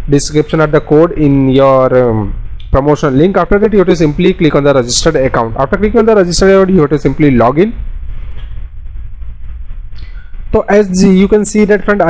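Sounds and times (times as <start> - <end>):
low rumble: 0.0 - 12.0
faint hiss: 9.9 - 12.0.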